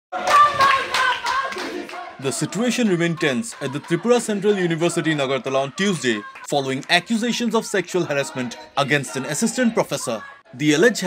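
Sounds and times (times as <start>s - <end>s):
rhythmic group clapping: 0.1s - 10.3s
raised voices: 0.2s - 11.0s.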